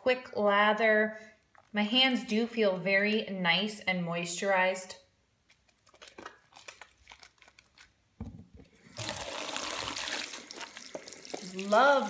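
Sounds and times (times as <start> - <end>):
soapy hands rubbing together: 9.0 - 12.0
tap water running into sink: 9.0 - 12.0.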